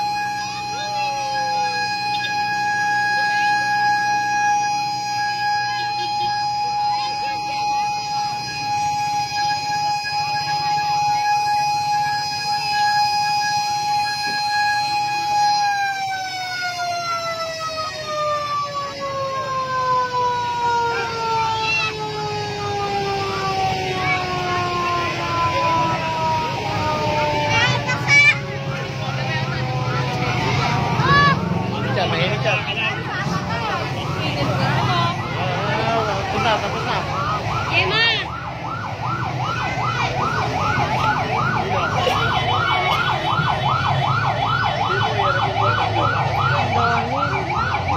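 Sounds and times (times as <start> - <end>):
siren winding down: 0.0 - 47.9.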